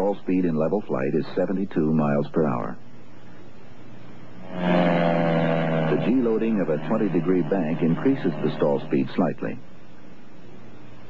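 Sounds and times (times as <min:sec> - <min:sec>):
faint steady hiss: 0:00.0 - 0:11.0
steady buzzing tone: 0:02.8 - 0:11.0.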